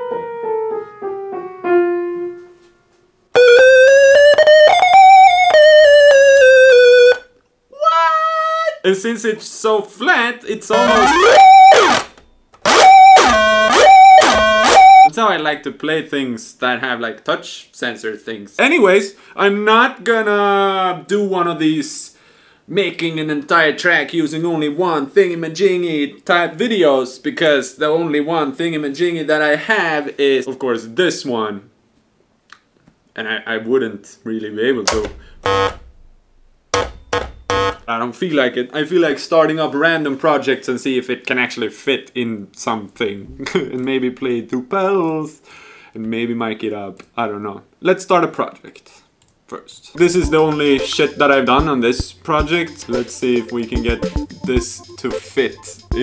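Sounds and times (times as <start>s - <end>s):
steady high tone: 3.4s - 7.2s, 10.7s - 15.1s, 50.0s - 56.0s
buzzy toy synthesizer note: 3.4s - 7.3s, 10.7s - 15.1s, 35.4s - 35.8s, 36.8s - 37.9s, 50.0s - 56.0s.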